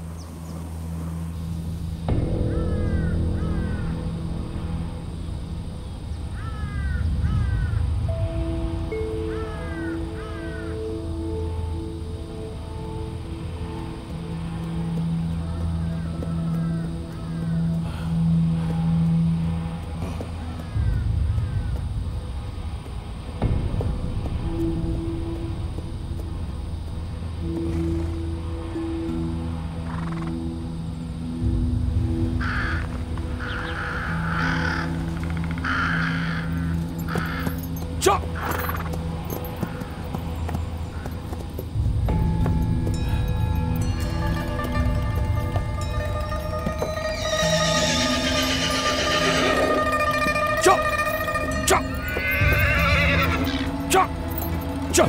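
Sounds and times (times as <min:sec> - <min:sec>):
film score low held notes: 0:00.0 - 0:55.0
crows cawing: 0:02.4 - 0:04.2, 0:06.3 - 0:08.0, 0:09.2 - 0:11.0, 0:15.8 - 0:18.8, 0:20.0 - 0:21.8, 0:32.4 - 0:40.0, 0:44.3 - 0:54.2.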